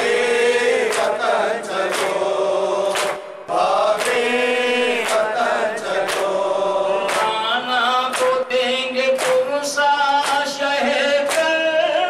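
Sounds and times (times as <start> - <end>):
man chanting a lament: 6.8 - 12.0.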